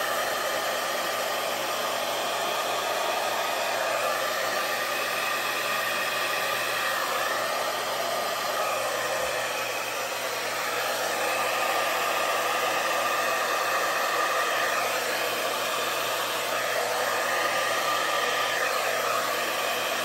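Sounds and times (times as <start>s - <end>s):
hair dryer running: 0.0s - 20.0s.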